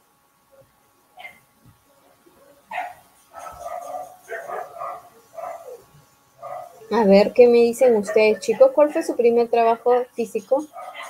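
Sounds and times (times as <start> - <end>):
dog barking: 1.2 - 1.4, 2.4 - 6.9, 8.0 - 9.2, 10.7 - 11.0
voice: 6.9 - 10.8.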